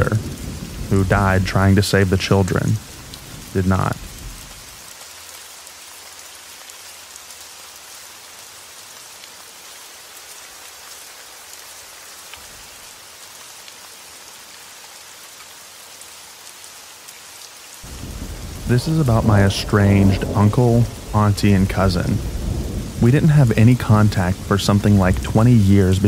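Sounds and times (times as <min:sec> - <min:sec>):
light rain patter: 0:00.0 - 0:26.0.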